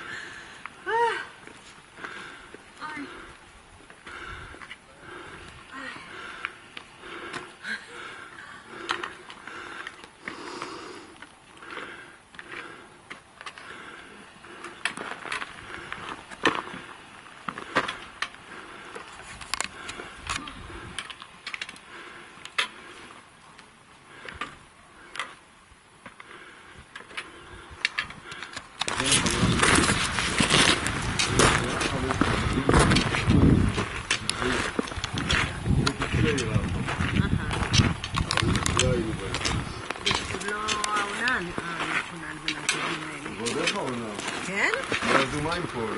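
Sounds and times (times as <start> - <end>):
footsteps on loose rocks: 8.7 - 45.9.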